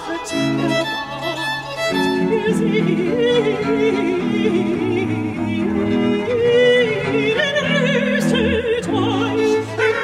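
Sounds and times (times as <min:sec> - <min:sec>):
baroque chamber ensemble playing: 0:00.0 - 0:10.0.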